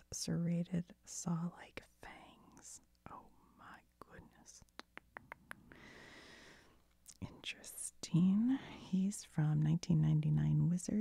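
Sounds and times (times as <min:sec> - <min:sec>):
faint whispering: 0:01.1 - 0:04.8, 0:07.1 - 0:09.4.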